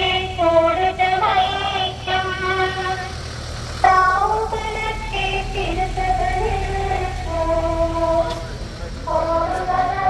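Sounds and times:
person singing long held notes: 0.0s - 3.2s, 3.8s - 10.0s
van engine idling: 0.0s - 10.0s.

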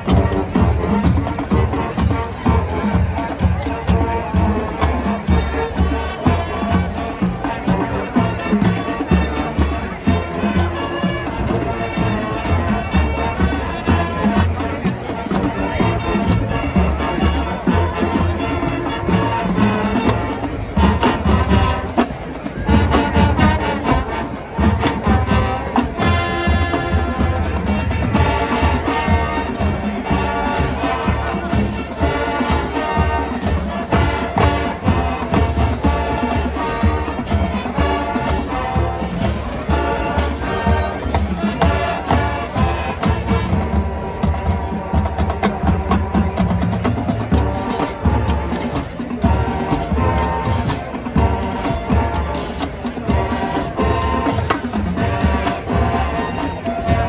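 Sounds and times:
brass and woodwind chords: 0.0s - 57.0s
marching band drums: 0.0s - 57.0s
percussion ensemble: 0.0s - 57.0s.

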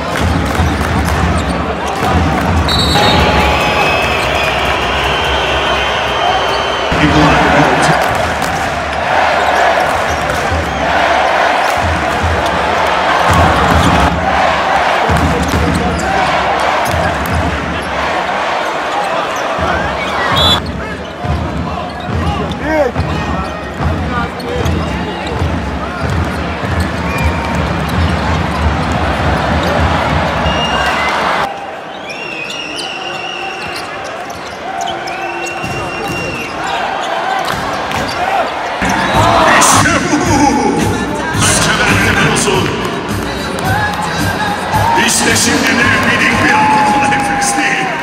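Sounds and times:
large arena crowd noise: 0.0s - 48.0s
sneakers squeaking on floor: 0.5s - 7.0s, 18.8s - 39.5s.

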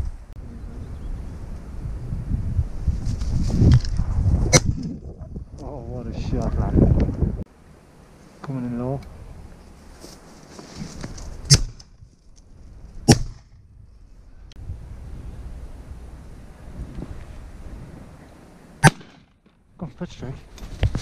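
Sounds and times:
shotgun shots: 13.1s - 13.4s, 18.8s - 19.3s.

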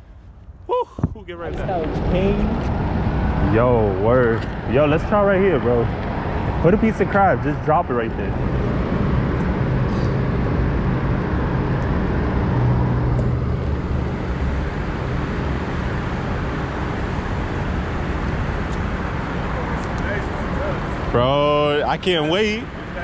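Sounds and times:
low engine hum: 0.0s - 23.0s
road traffic noise: 0.0s - 23.0s.

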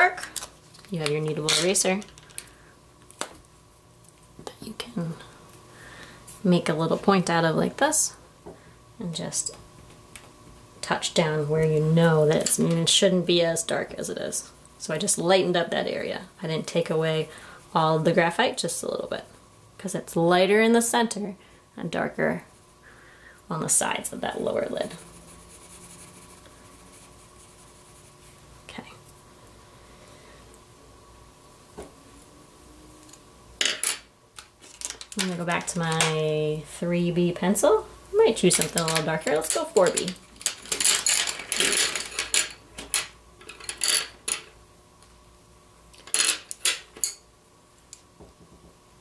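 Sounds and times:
wooden pencils clinking: 34.6s - 36.1s.

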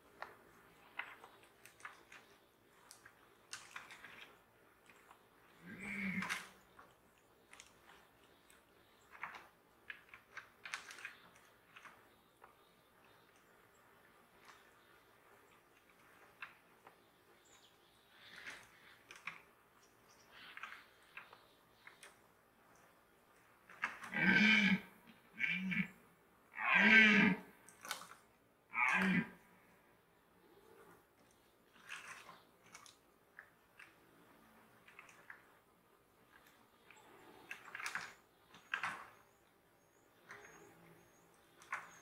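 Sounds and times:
vegetation crackling and snapping: 0.1s - 13.2s, 18.2s - 22.9s, 23.7s - 24.3s, 27.7s - 28.2s, 36.3s - 39.3s
deer stag roaring: 24.0s - 25.9s, 26.5s - 27.5s, 28.7s - 29.4s.

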